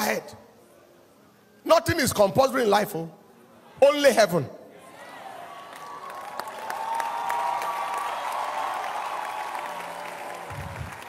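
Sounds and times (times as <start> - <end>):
congregation applauding: 5.2 - 11.0.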